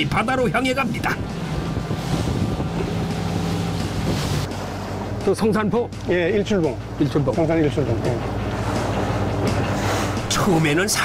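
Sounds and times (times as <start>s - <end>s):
wind buffeting microphone: 0.0s - 5.3s
outboard motor running: 0.0s - 11.0s
rush of wind and water: 0.0s - 11.0s.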